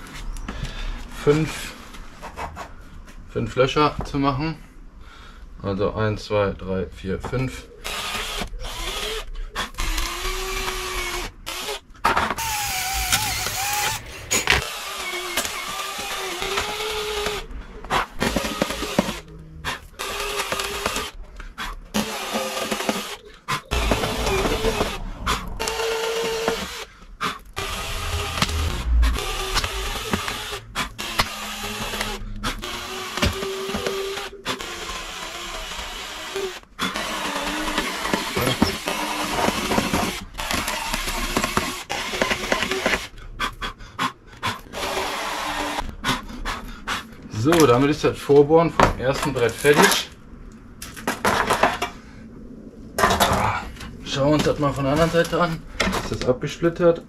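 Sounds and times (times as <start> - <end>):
cordless drill whining: 7.8 - 21.2, 21.9 - 43.2, 44.7 - 45.9.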